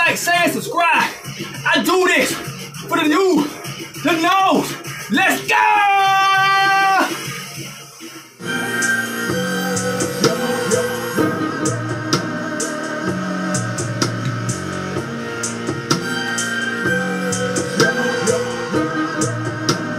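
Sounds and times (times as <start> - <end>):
instrumental backing music: 0.0 - 19.9
steady drum beat: 9.3 - 19.9.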